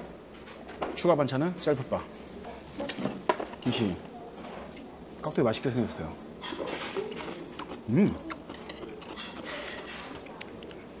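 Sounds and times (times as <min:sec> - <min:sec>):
chewing crunchy food: 0:06.5 - 0:11.0.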